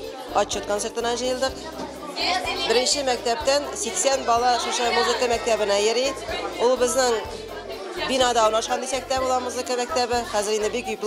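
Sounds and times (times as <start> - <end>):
background music: 0.0 - 11.0
woman talking: 2.4 - 7.2, 8.0 - 11.0.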